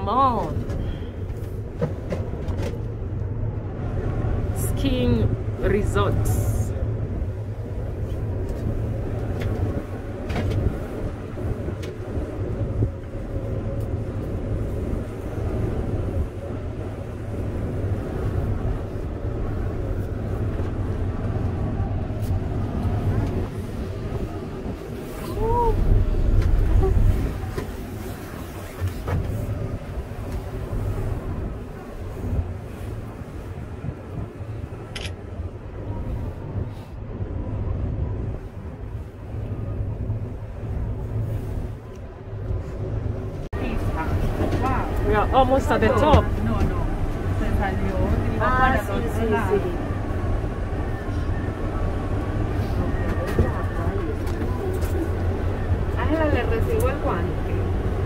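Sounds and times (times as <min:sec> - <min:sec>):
cable car cabin rumble: 0:00.0 - 0:58.0
deep loud rumble: 0:00.0 - 0:58.0
quiet passenger voices: 0:00.0 - 0:58.0.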